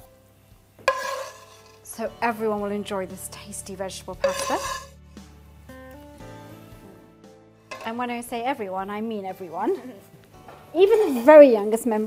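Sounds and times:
metal spoon clinking on dish: 4.2 - 4.9, 7.7 - 8.0.

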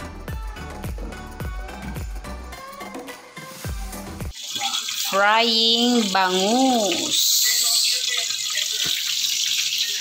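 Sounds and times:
fish sizzling in hot oil: 3.4 - 10.0.

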